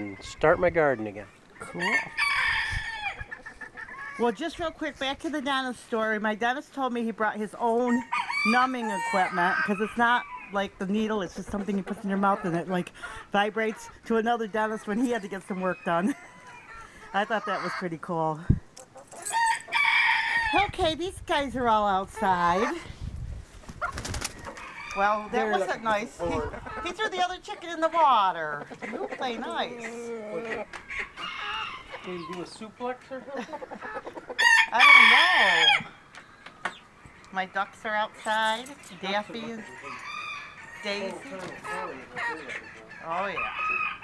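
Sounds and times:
chickens clucking: 0.0 - 44.0
chickens scuffling: 21.6 - 37.3, 38.0 - 44.0.

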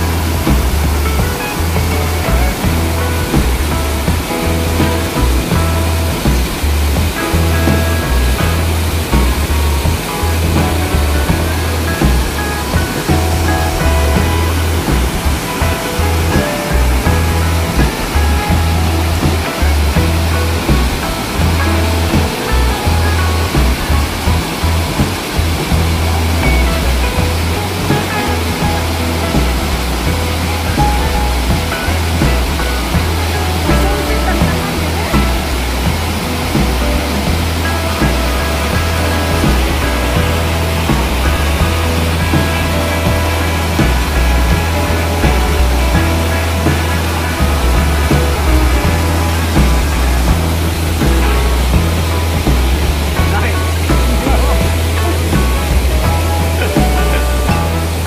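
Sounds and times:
music playing: 0.0 - 58.0
waterfall roaring: 0.0 - 58.0.

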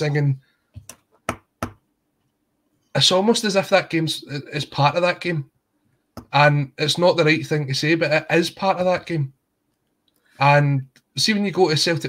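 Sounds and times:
man speaking: 0.0 - 0.4, 2.9 - 5.5, 6.2 - 9.4, 10.4 - 12.0.

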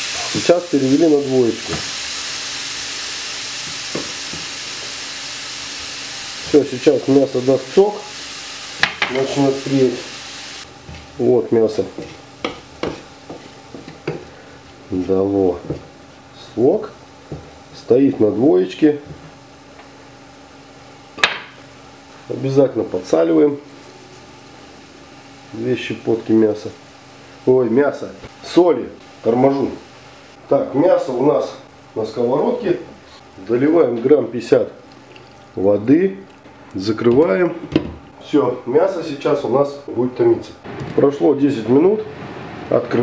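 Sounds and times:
meat sizzling in a frying pan: 0.0 - 27.8
wooden spatula knocking pan: 8.8 - 9.3, 11.8 - 14.3, 15.5 - 15.9.

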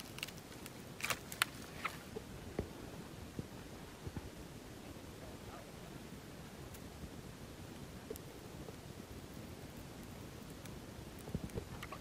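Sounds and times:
dry twigs and leaves crackling: 0.0 - 2.3.

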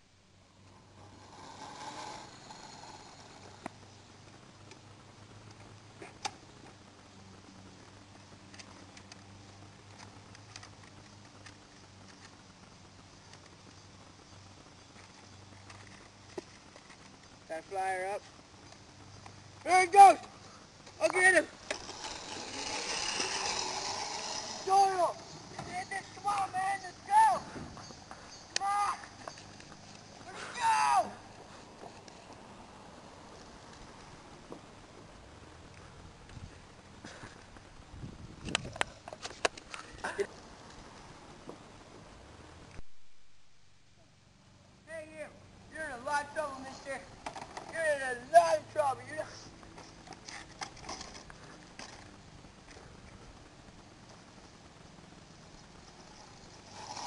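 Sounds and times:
rushing outdoor noise: 0.0 - 57.0
person shouting: 25.8 - 27.5, 28.6 - 29.1, 30.2 - 31.2.

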